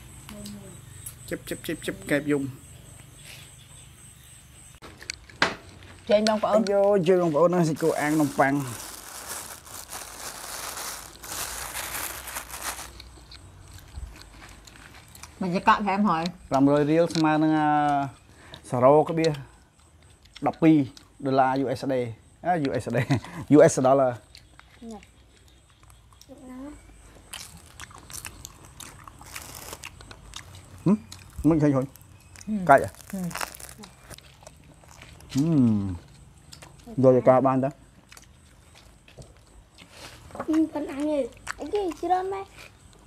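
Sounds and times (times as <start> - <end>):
crunchy chewing: 0.0 - 43.0
plastic bag crinkling: 7.5 - 13.1, 29.1 - 30.0, 31.2 - 34.3
biting crusty bread: 7.7 - 15.4, 24.2 - 37.0.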